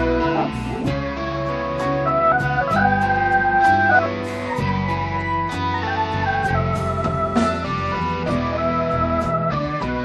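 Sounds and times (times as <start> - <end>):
blues band playing: 0.0 - 10.0
organ sustained chords: 0.0 - 10.0.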